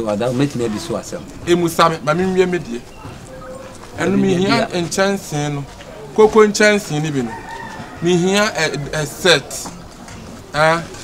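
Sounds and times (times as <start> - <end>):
rooster crowing: 7.1 - 8.6.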